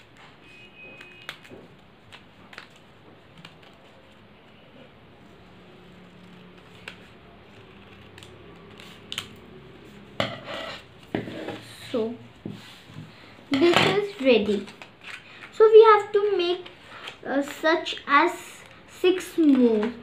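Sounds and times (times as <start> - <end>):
scissors snipping paper: 6.1 - 9.5
handling of scissors and paper: 13.6 - 17.6.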